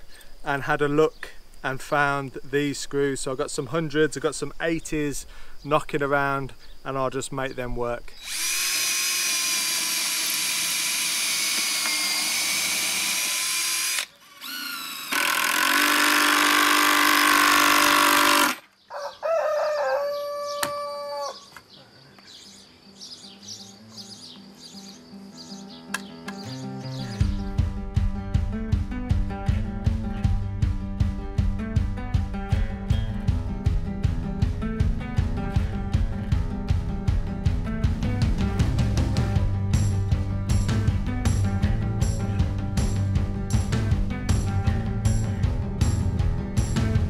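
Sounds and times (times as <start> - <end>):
cordless drill driving screws: 8.2 - 18.7
music with steady beat: 27.0 - 47.0.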